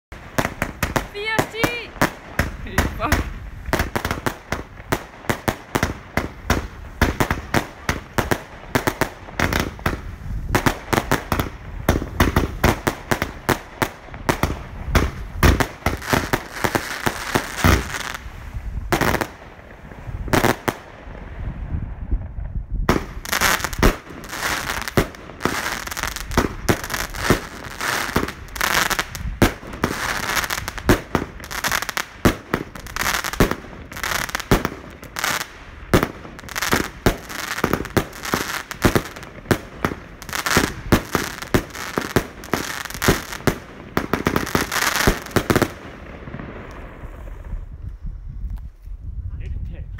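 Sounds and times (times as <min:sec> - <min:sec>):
firework barrage bursting: 0:00.1 - 0:47.8.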